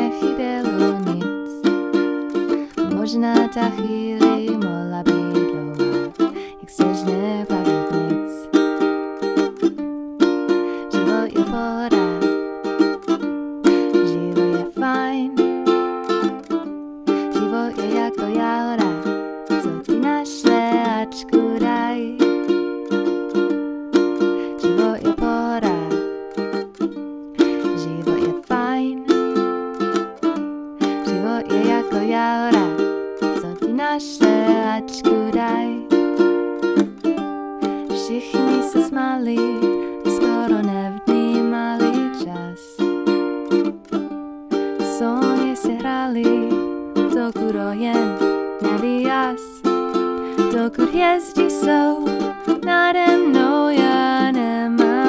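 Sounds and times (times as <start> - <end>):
ukulele strumming chords: 0.0 - 55.0.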